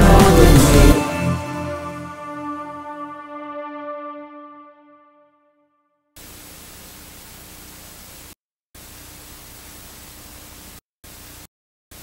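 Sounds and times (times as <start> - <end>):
tv static hiss: 6.2 - 12.0.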